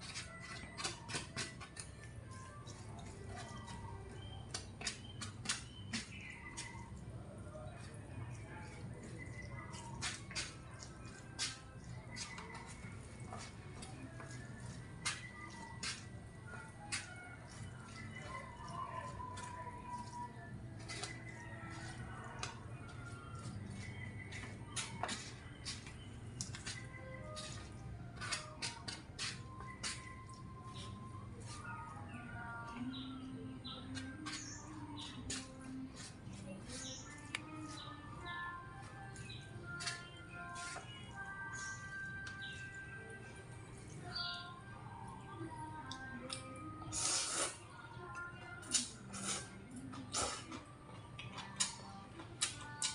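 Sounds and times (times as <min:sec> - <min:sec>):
chopsticks stirring noodles: 0:00.0 - 0:31.7
quiet background music: 0:00.0 - 0:52.9.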